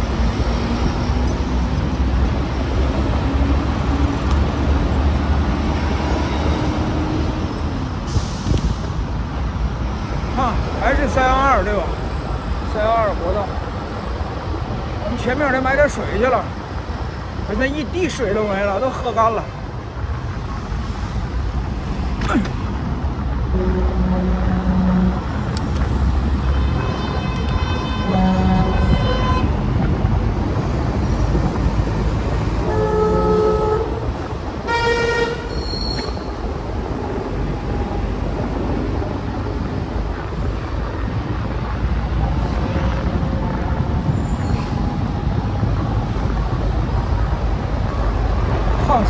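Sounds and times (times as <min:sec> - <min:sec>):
traffic and road noise: 0:00.0 - 0:49.0
vehicle horn toots: 0:23.5 - 0:25.2, 0:26.4 - 0:29.5, 0:32.6 - 0:34.0, 0:34.6 - 0:36.1.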